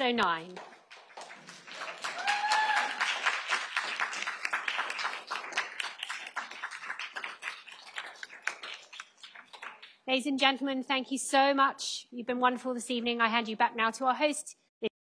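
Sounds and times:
people clapping: 0.2s - 10.0s
short high cheer: 2.0s - 3.2s.

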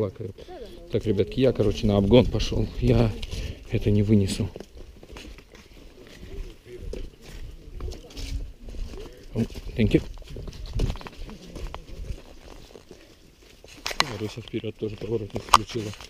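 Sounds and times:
footsteps on dirt trail: 0.0s - 16.0s
people talking quietly: 0.0s - 16.0s.

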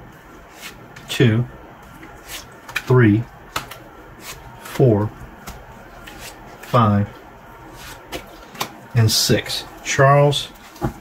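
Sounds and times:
cards tapping and sliding: 2.0s - 2.9s, 3.5s - 4.8s, 5.4s - 6.8s, 7.8s - 8.8s.

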